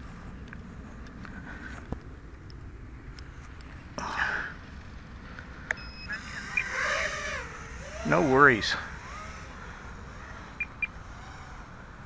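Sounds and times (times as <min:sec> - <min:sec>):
quadcopter motors whining: 0:05.7 - 0:12.0
electronic beep: 0:05.8 - 0:06.8, 0:10.6 - 0:10.9.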